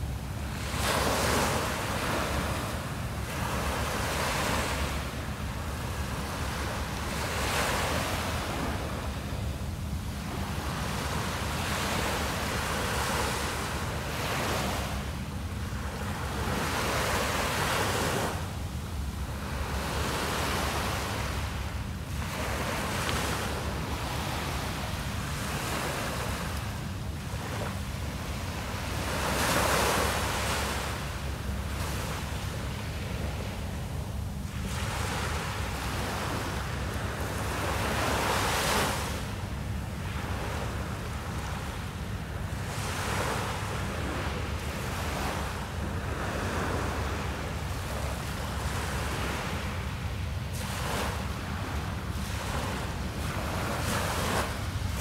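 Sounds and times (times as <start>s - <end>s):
small waves washing up beach: 0.0s - 18.4s, 19.2s - 55.0s.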